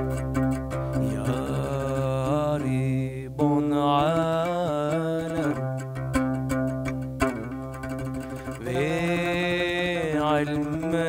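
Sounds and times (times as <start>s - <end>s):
oud notes: 0.0s - 11.0s
man singing a hymn: 1.0s - 5.5s, 8.6s - 11.0s.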